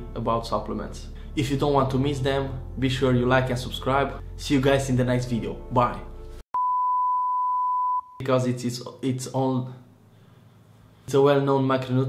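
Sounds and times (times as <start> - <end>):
steady electronic beep: 6.6 - 8.2.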